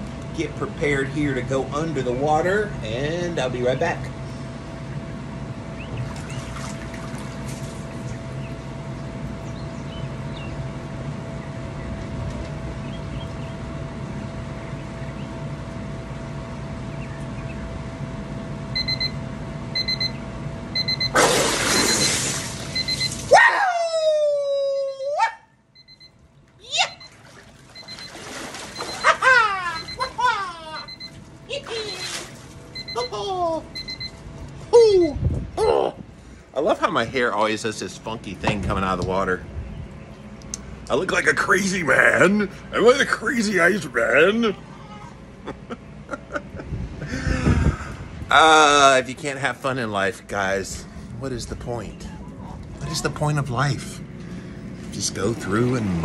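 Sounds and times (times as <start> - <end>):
steady hum: 0.0 - 56.0
water splashing: 6.0 - 8.0, 21.2 - 23.4, 27.0 - 30.2, 30.8 - 32.7
water sloshing: 6.0 - 8.2, 26.9 - 33.1
short electronic beep: 20.8 - 23.2.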